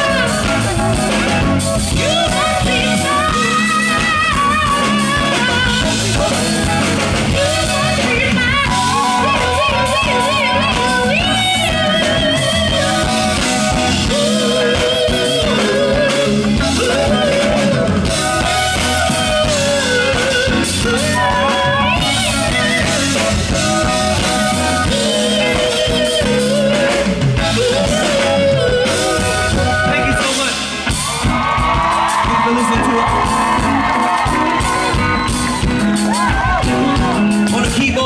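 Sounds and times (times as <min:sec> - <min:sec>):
live soul band playing: 0:00.0 - 0:38.0.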